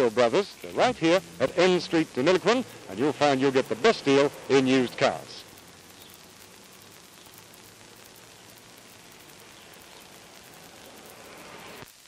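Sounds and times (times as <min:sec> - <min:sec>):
tape hiss with faint crackle: 0:00.0 - 0:12.0.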